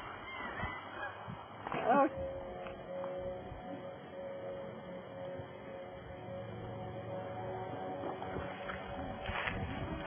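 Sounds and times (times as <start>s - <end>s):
open-air background noise: 0.0s - 10.0s.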